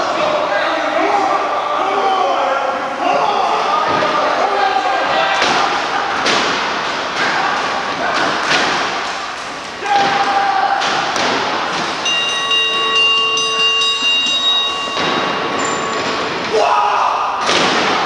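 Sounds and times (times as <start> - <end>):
voices shouting: 0.0 - 18.0.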